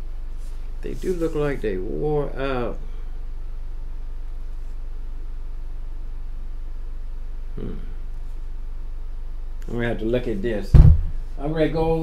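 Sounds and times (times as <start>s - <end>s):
faint hiss: 0.0s - 12.0s
low electrical hum: 0.0s - 12.0s.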